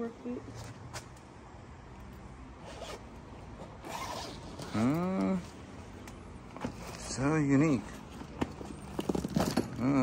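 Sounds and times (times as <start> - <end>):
zipper on fabric bag: 2.6 - 3.0, 3.8 - 5.0.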